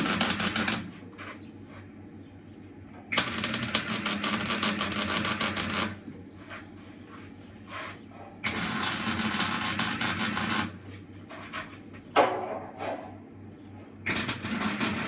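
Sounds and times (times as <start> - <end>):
welding arc crackling: 0.0 - 1.0, 3.1 - 6.0, 8.4 - 10.8, 14.1 - 15.0.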